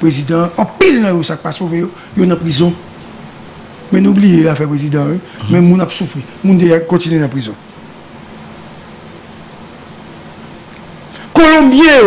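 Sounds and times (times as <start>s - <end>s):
faint low hum: 0.0s - 12.0s
studio room hiss: 0.0s - 12.0s.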